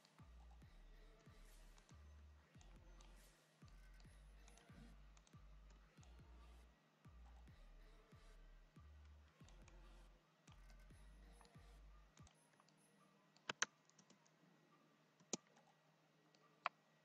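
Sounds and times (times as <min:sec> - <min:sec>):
faint low hum: 0:00.0 - 0:17.0
computer mouse clicks: 0:13.4 - 0:14.4.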